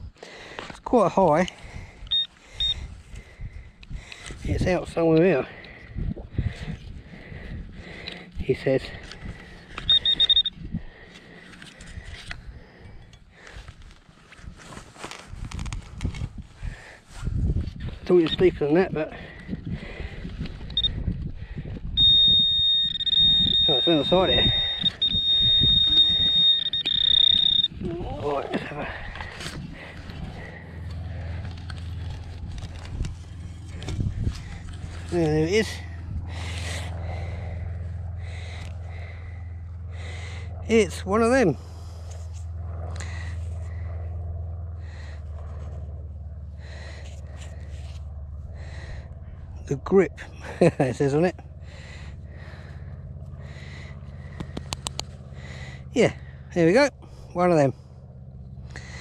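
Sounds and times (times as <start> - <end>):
low mechanical hum: 0.0 - 59.0
high-pitched pinpointer tone: 2.1 - 2.8, 9.8 - 10.6, 22.0 - 27.9.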